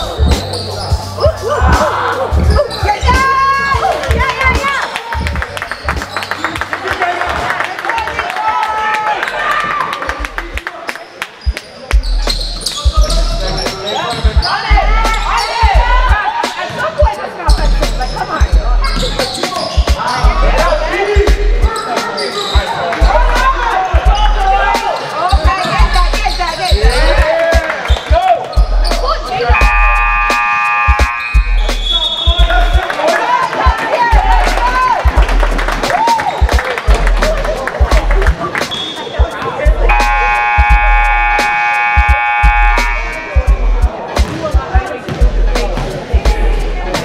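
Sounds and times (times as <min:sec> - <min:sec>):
music with bass beat: 0:00.0 - 0:06.7, 0:10.1 - 0:10.6, 0:11.5 - 0:21.8, 0:23.0 - 0:32.9, 0:33.6 - 0:47.0
sneakers squeaking: 0:00.0 - 0:07.4, 0:11.0 - 0:34.9, 0:37.9 - 0:47.0
players shouting: 0:00.0 - 0:10.4, 0:18.9 - 0:47.0
horn-like tone: 0:29.5 - 0:32.1, 0:39.8 - 0:43.8
basketballs bouncing on hardwood: 0:45.1 - 0:45.9.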